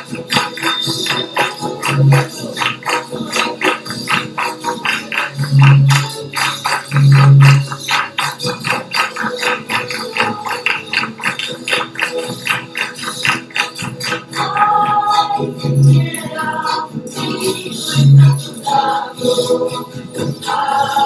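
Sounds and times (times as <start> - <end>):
tambourine beat: 0.0 - 15.0
strummed guitars: 0.0 - 16.4.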